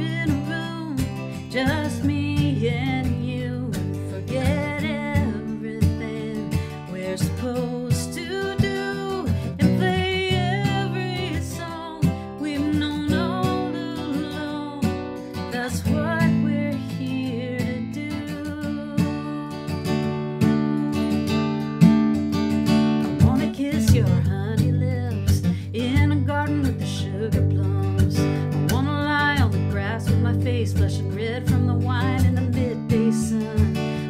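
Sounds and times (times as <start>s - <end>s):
acoustic guitar strummed and picked: 0.0s - 34.0s
person singing folk song: 0.0s - 34.0s.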